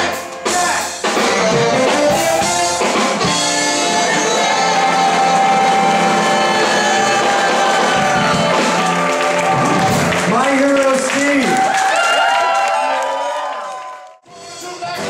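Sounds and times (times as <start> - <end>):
swing band holding sustained notes: 0.0 - 11.2.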